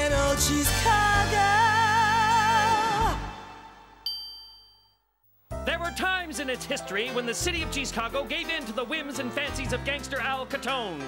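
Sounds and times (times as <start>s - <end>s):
bright bell-like ding: 4.1s - 5.1s.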